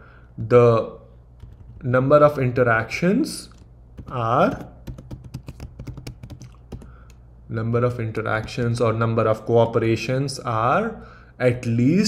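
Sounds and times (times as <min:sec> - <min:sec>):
computer keyboard typing: 0:01.4 - 0:01.9, 0:03.5 - 0:07.2, 0:08.1 - 0:09.0.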